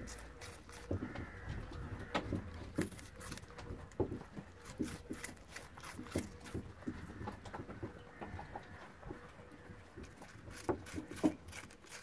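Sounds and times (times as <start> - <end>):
rabbit crunching apple: 0.0 - 7.8, 9.0 - 12.0.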